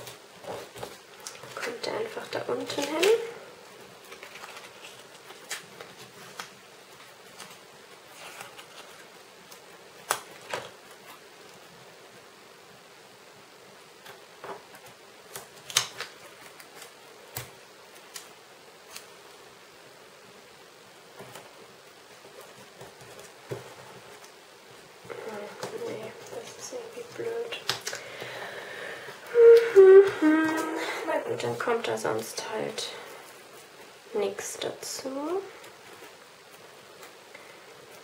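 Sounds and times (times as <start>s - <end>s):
faint steady hiss: 0.0s - 38.0s
tape and paper taps and rustles: 8.2s - 10.9s, 14.0s - 18.3s.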